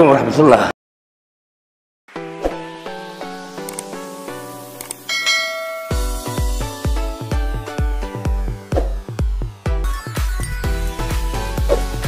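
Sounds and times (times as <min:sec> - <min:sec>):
brief clicks: 0:03.6 - 0:03.9, 0:04.8 - 0:05.0
bright bell chime: 0:05.1 - 0:06.6
electronic dance beat with bass: 0:05.9 - 0:12.0.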